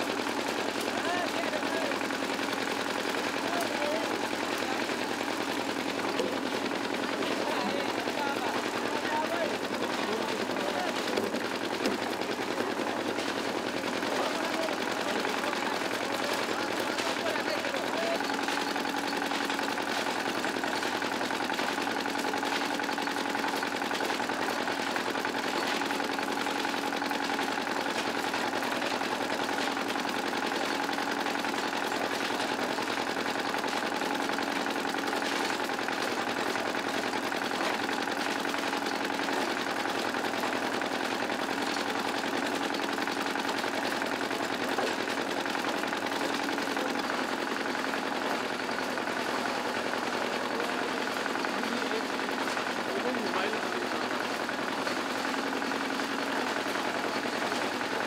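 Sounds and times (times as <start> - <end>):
concrete mixer engine running: 0.0 - 58.0.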